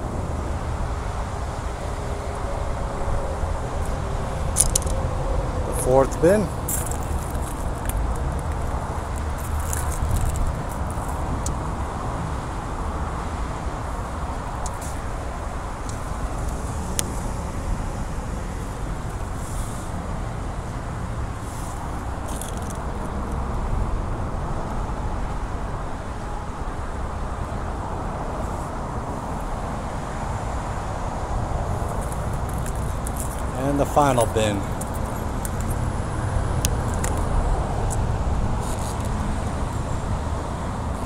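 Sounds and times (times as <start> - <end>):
low outdoor rumble: 0.0 - 41.0
cables rustling and clicking: 3.8 - 5.1, 6.6 - 11.6, 22.2 - 23.1, 31.8 - 33.6, 34.2 - 35.9, 36.6 - 39.8.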